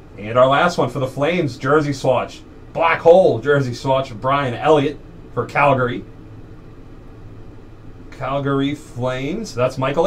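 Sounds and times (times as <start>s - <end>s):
room tone hum and hiss: 0.0s - 10.0s.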